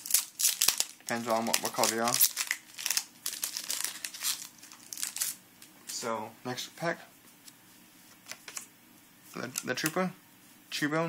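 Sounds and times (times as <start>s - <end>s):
foil wrapper crinkling: 0.0s - 6.0s.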